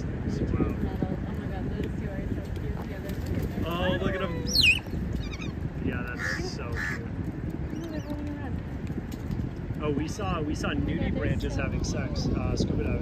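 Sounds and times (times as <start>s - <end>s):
low rumble of wind and water: 0.0s - 13.0s
crows cawing: 6.2s - 7.1s.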